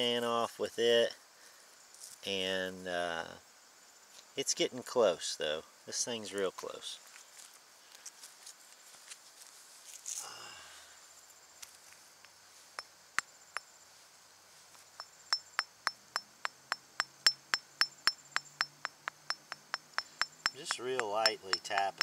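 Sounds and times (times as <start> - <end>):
light hammer taps on metal: 17.2 - 22.0.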